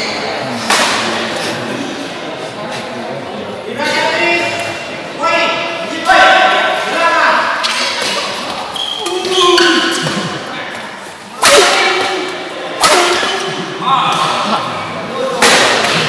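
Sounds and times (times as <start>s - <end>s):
players shouting: 11.4s - 16.0s.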